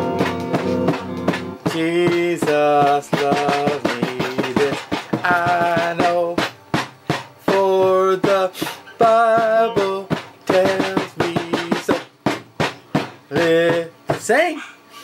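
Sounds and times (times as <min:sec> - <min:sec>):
toy electric guitar tune: 0:00.0 - 0:11.6
clicking drum beat: 0:00.0 - 0:14.4.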